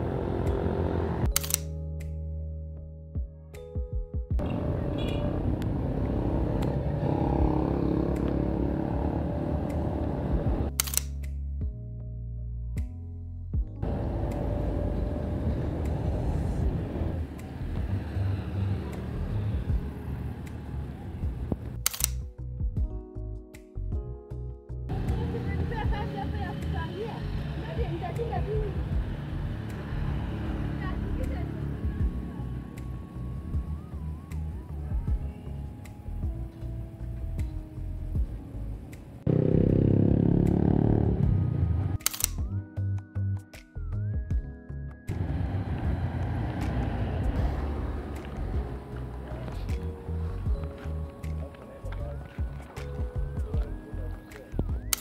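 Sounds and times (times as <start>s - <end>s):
motor vehicle engine running: 0.0s - 1.5s, 4.4s - 10.7s, 13.8s - 21.8s, 24.9s - 34.2s, 45.1s - 54.1s
background music: 0.0s - 55.0s
outdoor street sound: 0.0s - 55.0s
camera shutter click: 1.3s - 1.8s, 10.7s - 11.2s, 21.8s - 22.2s, 42.0s - 42.5s.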